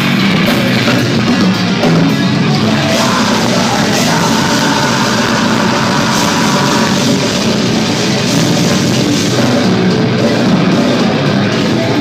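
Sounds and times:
distorted guitars: 0:00.0 - 0:12.0
drums: 0:00.0 - 0:12.0
vocalist growling: 0:02.6 - 0:07.9.

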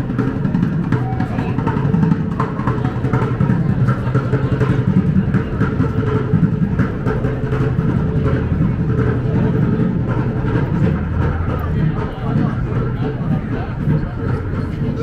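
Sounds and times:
city traffic drone: 0:00.0 - 0:15.0.

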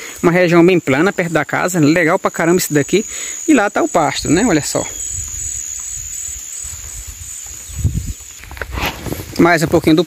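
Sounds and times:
insect trilling: 0:00.0 - 0:10.0.

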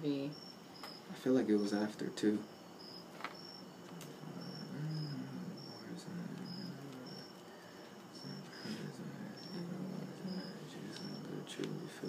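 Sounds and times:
faint high chirps: 0:00.1 - 0:12.0
book pages rustling: 0:03.2 - 0:03.4
low murmured voice: 0:03.9 - 0:07.3, 0:08.1 - 0:12.0.

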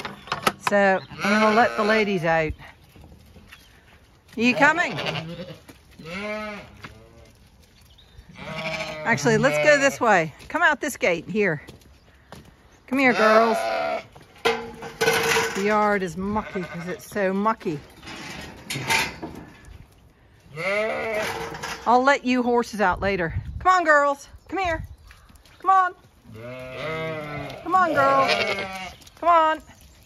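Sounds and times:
sheep bleating: 0:01.1 - 0:02.2, 0:04.4 - 0:07.3, 0:08.3 - 0:10.1, 0:13.0 - 0:14.1, 0:16.2 - 0:17.1, 0:20.5 - 0:21.4, 0:26.3 - 0:29.0.

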